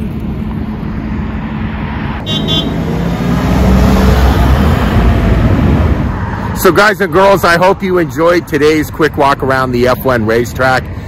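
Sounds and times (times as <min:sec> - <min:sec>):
city road traffic: 0:00.0 - 0:11.0
vehicle passing: 0:00.7 - 0:11.0.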